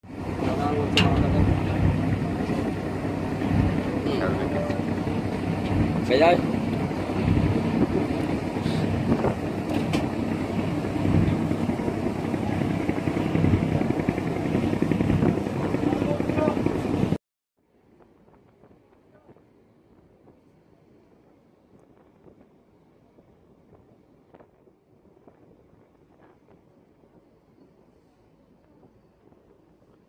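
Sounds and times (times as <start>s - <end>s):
boat engine running: 0.1s - 17.2s
water rushing past hull: 0.1s - 17.2s.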